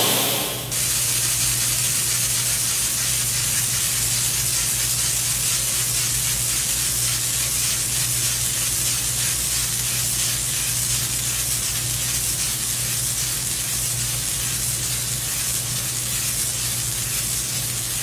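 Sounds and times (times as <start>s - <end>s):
low hum: 0.0s - 0.8s
laser etching hiss: 0.0s - 5.0s.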